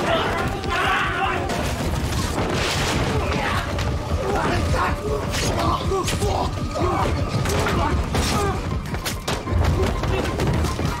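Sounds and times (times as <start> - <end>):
men shouting and grunting: 0.0 - 1.8, 3.0 - 8.9.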